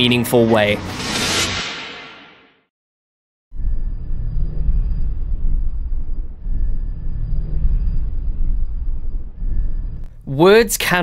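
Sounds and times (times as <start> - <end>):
faint high whine: 3.6 - 10.6.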